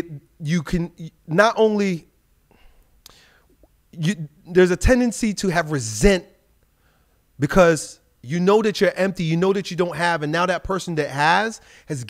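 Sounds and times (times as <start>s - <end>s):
faint breathing: 2.5s - 3.6s, 6.7s - 7.3s, 11.6s - 11.9s
mouth click: 3.0s - 3.8s.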